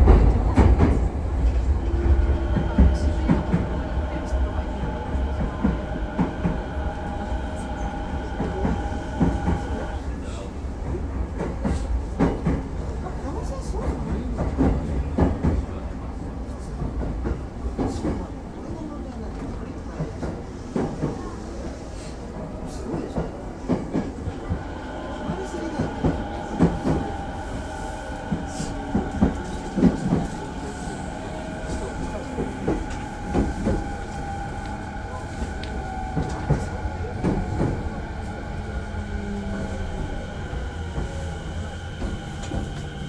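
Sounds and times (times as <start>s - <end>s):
train rumble: 0.0s - 43.0s.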